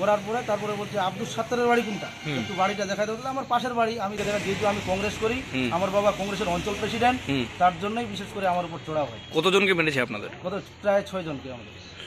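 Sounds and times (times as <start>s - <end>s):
man talking: 0.0s - 11.7s.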